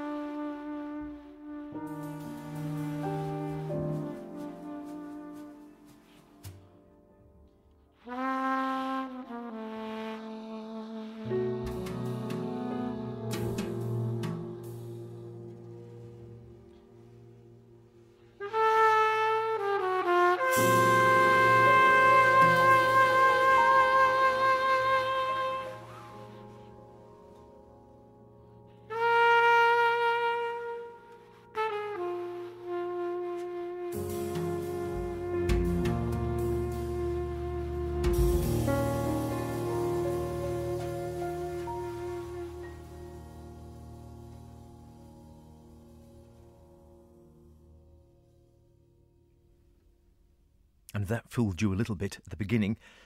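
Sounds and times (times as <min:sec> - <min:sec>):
trumpet long held note: 0:00.0 - 0:06.6, 0:08.0 - 0:16.8, 0:18.2 - 0:27.5, 0:28.8 - 0:46.6
quiet musical backing: 0:00.0 - 0:50.2.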